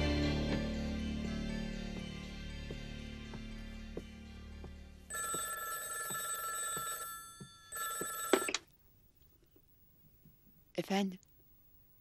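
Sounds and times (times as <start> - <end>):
landline telephone ringing: 5.1 - 8.7.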